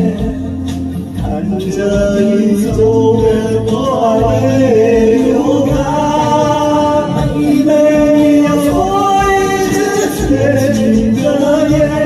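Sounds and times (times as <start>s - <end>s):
karaoke backing track: 0.0s - 12.0s
man singing into a microphone: 0.0s - 12.0s.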